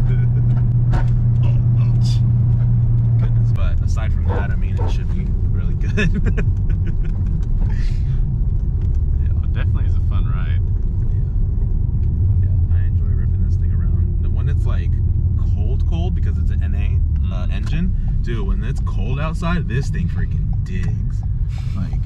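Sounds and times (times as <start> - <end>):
people talking: 0.0 - 0.6, 1.4 - 2.2, 3.2 - 8.1, 9.2 - 10.6, 12.5 - 22.0
car engine rumble: 0.0 - 22.0
road noise: 0.0 - 22.0
people laughing: 5.7 - 8.0.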